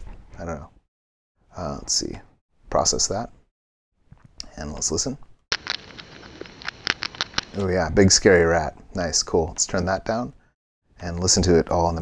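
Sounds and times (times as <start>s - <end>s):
low-pitched crunchy nibbling clicks: 5.5s - 7.8s.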